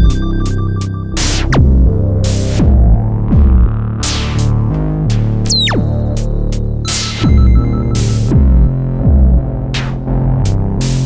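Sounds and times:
droning synth bass line: 0.0 - 11.0
synth kick drum: 1.2 - 3.8, 5.5 - 6.2, 6.9 - 9.9.

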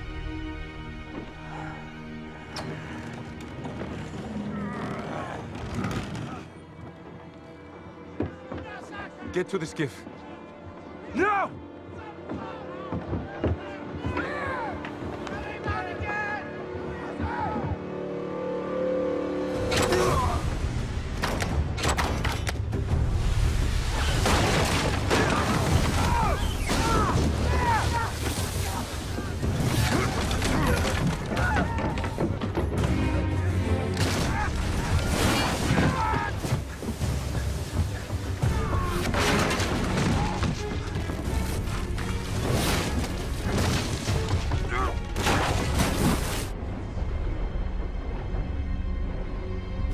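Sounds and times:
orchestral music: 0.0 - 49.9
sustained orchestral notes: 13.8 - 21.2
wooden ship gear cracks and thuds: 21.2 - 22.8, 24.2 - 33.2, 33.9 - 46.5
wood smashing and splintering: 23.8 - 33.1, 34.0 - 46.5.

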